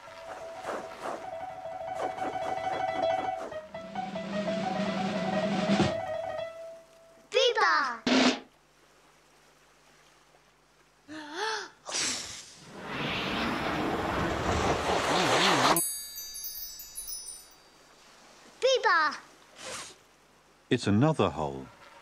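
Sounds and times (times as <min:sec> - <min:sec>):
high twinkling chime: 0:15.8 - 0:18.0.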